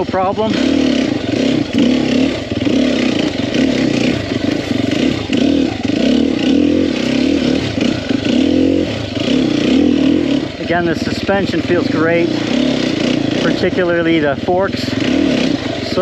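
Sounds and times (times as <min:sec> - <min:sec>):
dirt bike engine revving: 0:00.0 - 0:16.0.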